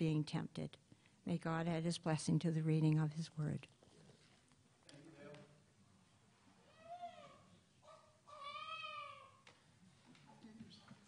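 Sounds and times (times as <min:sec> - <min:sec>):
infant crying: 0:06.7 - 0:09.4.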